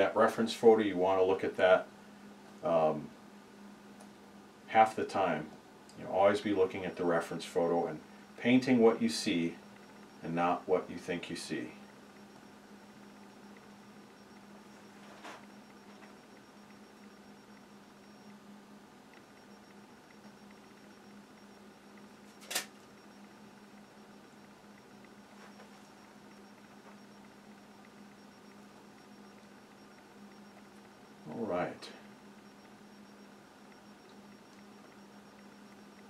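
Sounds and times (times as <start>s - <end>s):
steady low hum: 0.0s - 36.0s
sharp click: 22.4s - 22.8s.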